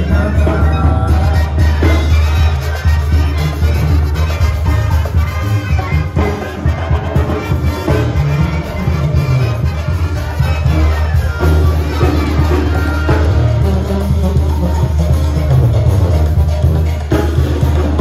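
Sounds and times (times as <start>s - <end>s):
brass band playing dance music: 0.0s - 18.0s.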